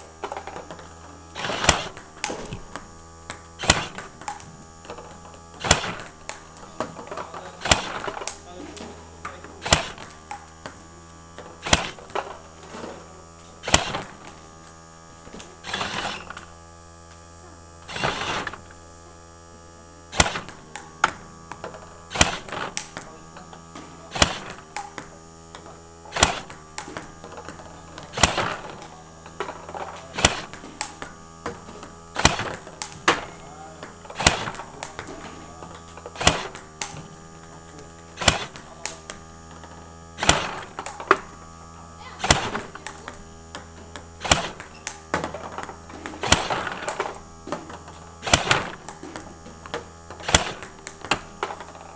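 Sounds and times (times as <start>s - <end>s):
steady hum: 0.0s - 51.9s
ping pong ball clicks: 1.6s - 8.4s, 9.2s - 12.6s, 20.1s - 41.3s, 42.2s - 51.9s.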